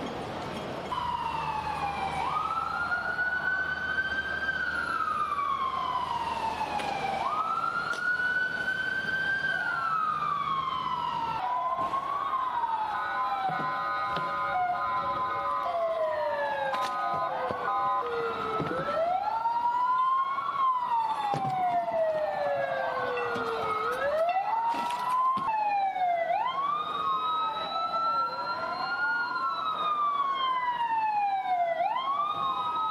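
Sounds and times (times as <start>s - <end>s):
police sirens wailing: 0.0s - 32.9s.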